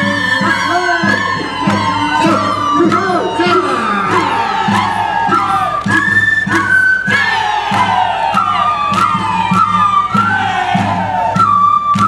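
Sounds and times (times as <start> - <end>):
long falling shouts: 0.0 - 5.8
crowd noise: 0.0 - 12.0
drum beat: 0.0 - 12.0
high held folk melody: 0.0 - 12.0.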